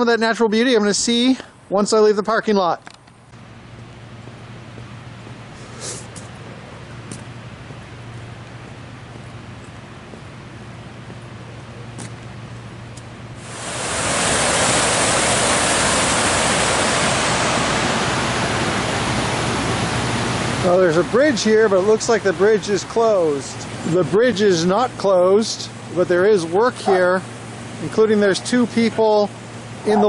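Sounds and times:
low steady hum: 0.0 - 30.0
creek whitewater rushing: 13.4 - 28.4.

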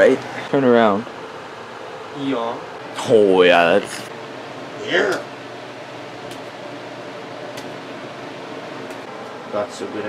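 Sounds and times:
fan-like room hiss: 0.0 - 10.0.

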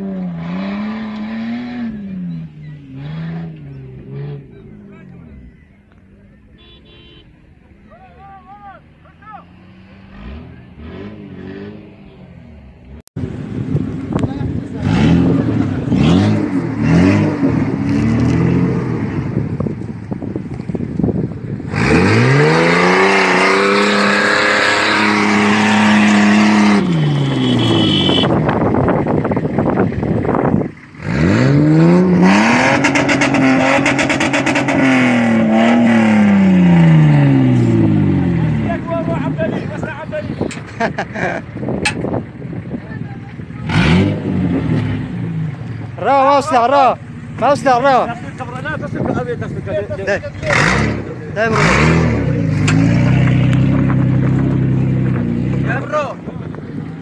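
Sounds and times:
engine revving hard: 0.0 - 4.7, 9.5 - 12.1, 14.7 - 19.3, 21.7 - 28.7, 30.9 - 39.8, 43.6 - 48.0, 50.0 - 56.0.

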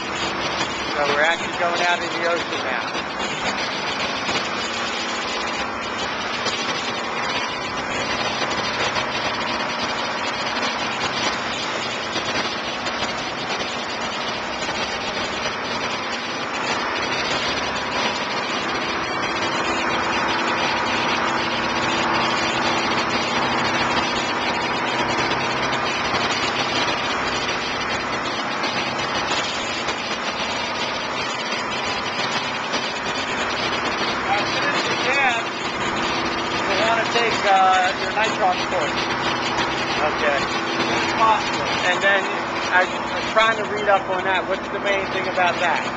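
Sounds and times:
boat engine running: 0.0 - 45.9
water churning in wake: 0.0 - 45.9.

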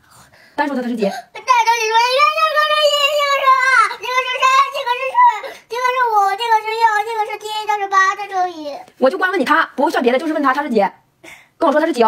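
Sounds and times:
child counting aloud while crying: 1.3 - 8.9.

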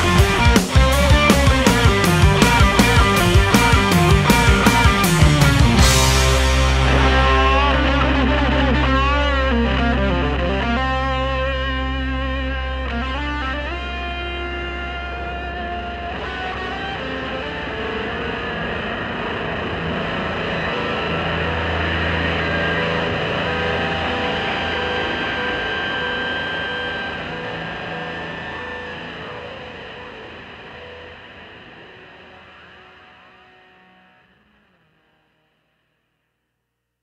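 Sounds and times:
hard rock music: 0.0 - 34.6
distorted electric guitar: 0.0 - 35.9.

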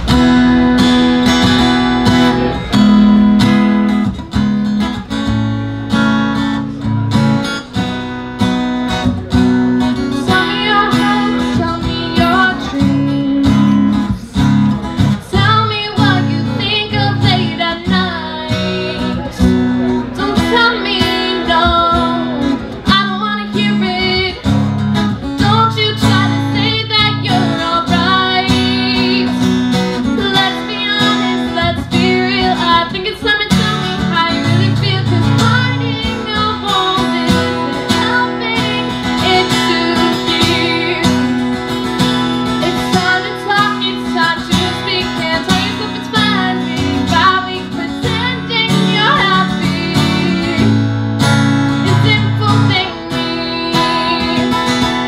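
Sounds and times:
acoustic guitar strumming: 0.0 - 55.0
woman singing: 10.0 - 14.3, 15.1 - 19.4, 20.0 - 41.8, 42.6 - 55.0.

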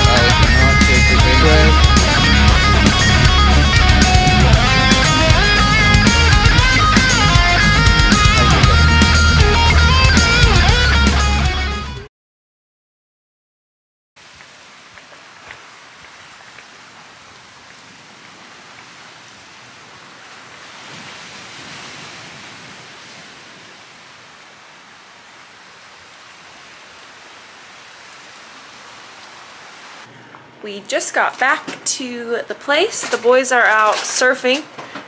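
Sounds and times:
rushing outdoor ambience: 0.0 - 11.4, 14.2 - 30.6.

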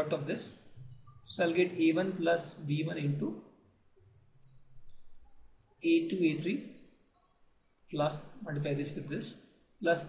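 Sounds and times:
man speaking: 0.0 - 0.6, 1.3 - 3.4, 8.0 - 10.0.

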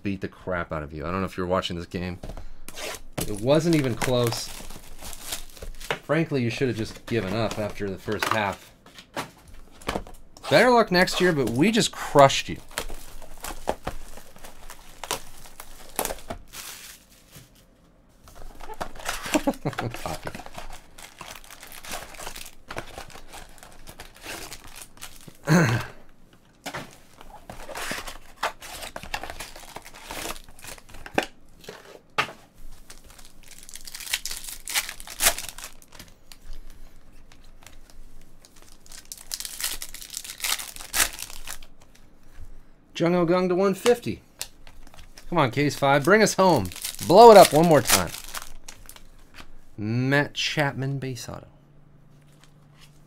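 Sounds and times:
plastic wrap crinkling and tearing: 2.7 - 8.6, 9.6 - 17.6, 18.3 - 25.9, 27.1 - 31.2, 32.7 - 36.7, 37.3 - 42.0, 44.4 - 49.3.

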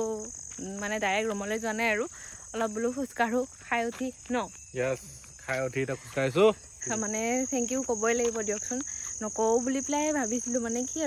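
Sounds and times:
woman talking: 0.0 - 4.6, 6.8 - 11.0
crickets chirring: 0.0 - 11.0.

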